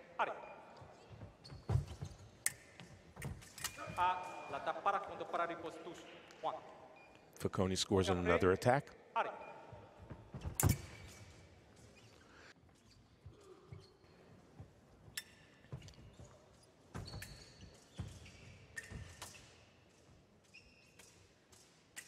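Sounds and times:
shoe squeaks: 0.3s - 4.7s, 6.8s - 7.3s, 9.4s - 22.0s.

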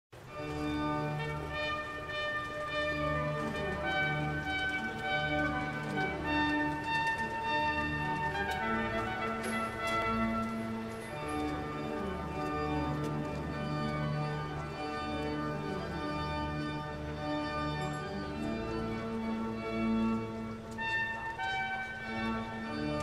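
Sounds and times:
music with sustained chords: 0.2s - 23.0s.

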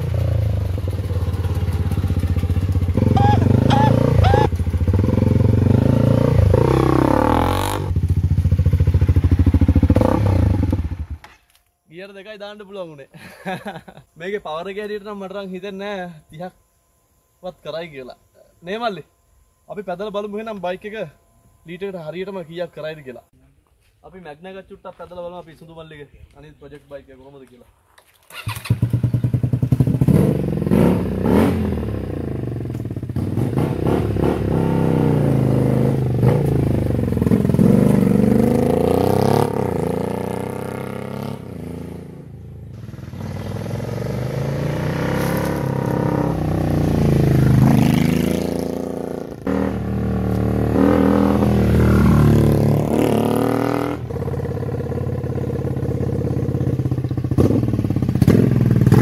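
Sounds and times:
motorcycle engine revving: 0.0s - 11.3s, 28.3s - 59.0s.

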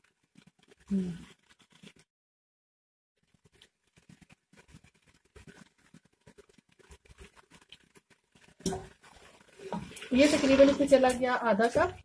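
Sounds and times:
faint crackling and ticking: 0.0s - 2.1s, 3.2s - 12.0s.

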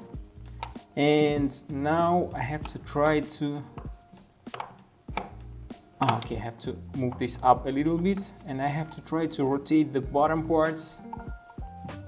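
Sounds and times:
wooden blocks knocking together: 3.7s - 5.4s, 6.0s - 6.4s
sharp wooden clicks: 4.5s - 5.4s.

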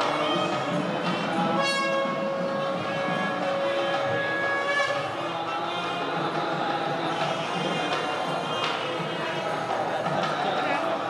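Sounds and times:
long horn-like note: 0.0s - 5.2s
ceremonial music: 0.0s - 11.0s.

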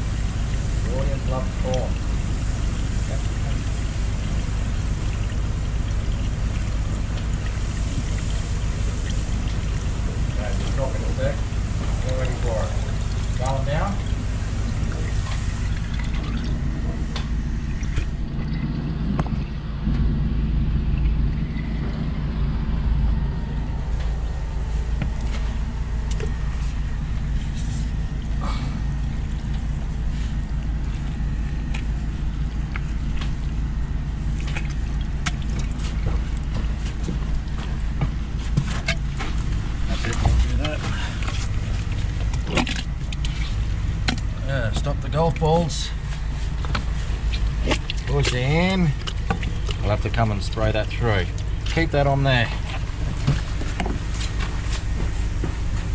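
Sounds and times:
engine droning steadily: 0.0s - 55.9s.

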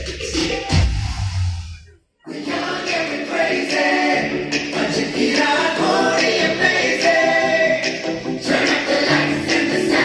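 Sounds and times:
song over sound system: 2.3s - 10.0s.

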